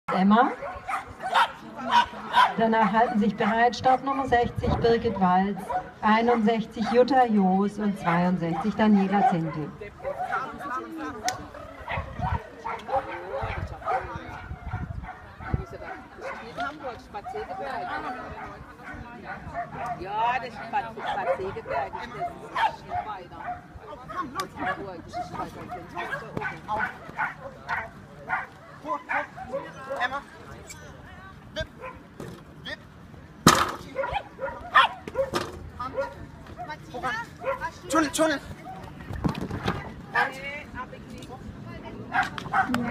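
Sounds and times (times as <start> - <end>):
dog barking: 0.5 - 3.7, 5.5 - 7.1, 8.0 - 10.6, 11.2 - 20.0, 20.6 - 23.7, 24.6 - 30.1, 31.8 - 32.0, 33.9 - 36.8, 37.4 - 37.8, 40.2 - 40.4, 42.1 - 42.9
small dog yipping: 34.0 - 36.8.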